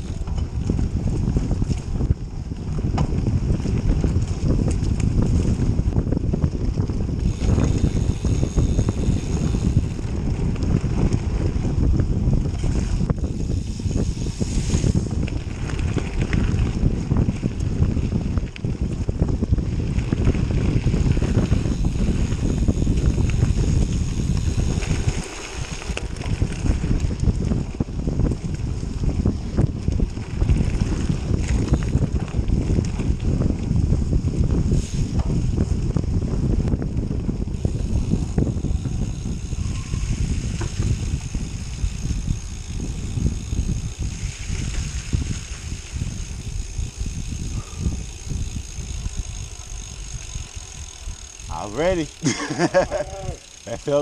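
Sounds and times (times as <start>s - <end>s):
bike rumbling and rattling on dirt: 0.0s - 54.0s
wind buffeting microphone: 0.0s - 54.0s.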